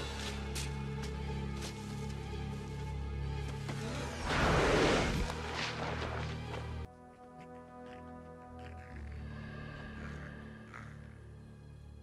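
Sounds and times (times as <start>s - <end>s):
orchestral music: 0.0s - 12.0s
sand rushing and hissing: 4.2s - 6.2s.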